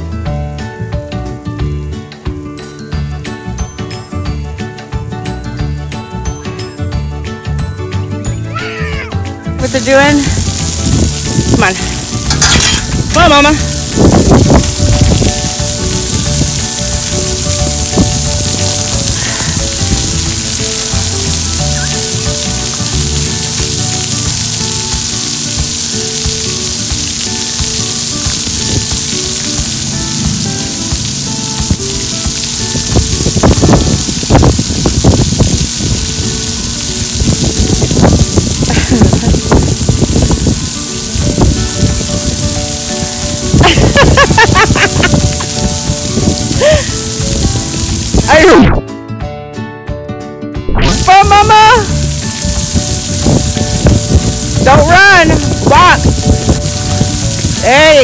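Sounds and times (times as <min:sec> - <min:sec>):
water jets spraying on concrete: 0:00.0 - 0:48.8, 0:50.8 - 0:58.0.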